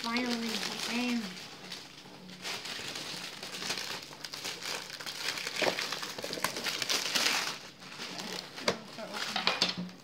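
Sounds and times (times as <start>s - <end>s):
plastic shrink-wrap crinkling: 0.0s - 10.0s.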